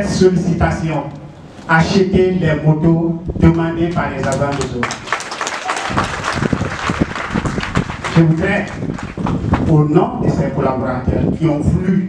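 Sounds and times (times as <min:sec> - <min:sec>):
group clapping: 0:03.9 - 0:09.7.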